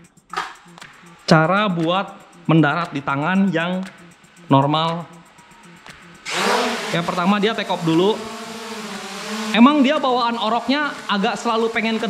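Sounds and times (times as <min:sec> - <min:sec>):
drone propellers spinning: 0:05.2 - 0:12.0.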